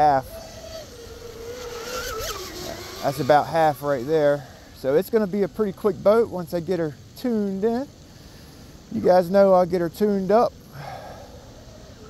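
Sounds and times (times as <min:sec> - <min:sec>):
electric motor whining: 0:00.0 - 0:04.7.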